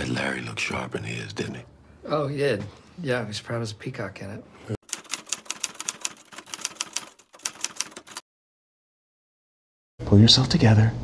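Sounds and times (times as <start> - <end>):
typewriter typing clicks: 4.8 - 8.2.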